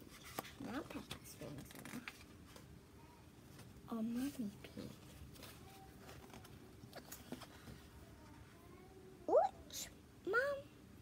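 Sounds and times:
book pages turning: 0:00.0 - 0:02.7, 0:03.5 - 0:07.8.

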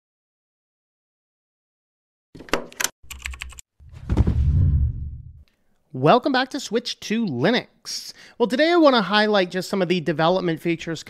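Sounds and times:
keyboard typing clicks: 0:02.5 - 0:03.6
deep swelling sound: 0:03.9 - 0:05.4.

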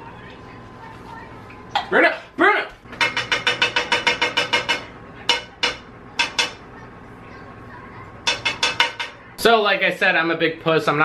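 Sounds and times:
utensil clicking against saucepan: 0:02.9 - 0:06.6, 0:08.3 - 0:09.2.

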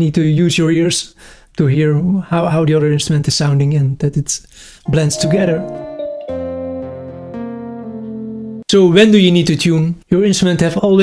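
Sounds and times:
kalimba notes: 0:04.9 - 0:08.6.

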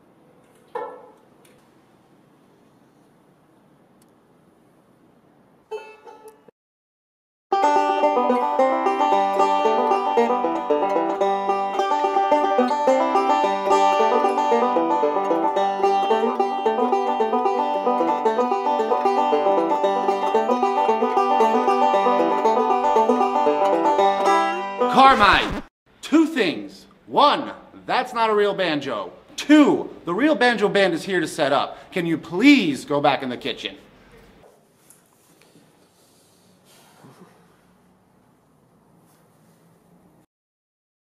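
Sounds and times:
banjo picking a tune: 0:07.5 - 0:25.1
banjo strum: 0:07.5 - 0:25.5.

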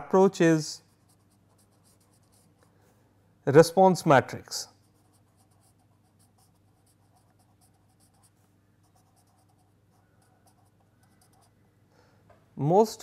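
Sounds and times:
felt-tip pen scratching on paper: 0:00.8 - 0:02.6, 0:04.8 - 0:11.5.

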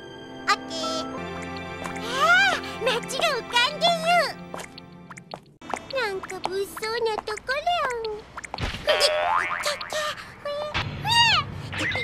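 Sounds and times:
background music: 0:00.0 - 0:07.5.

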